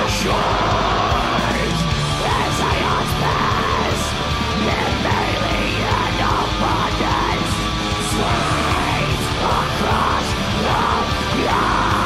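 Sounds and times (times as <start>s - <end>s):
distorted guitars: 0.0s - 12.0s
drums: 0.0s - 12.0s
harsh screamed vocals: 0.0s - 12.0s.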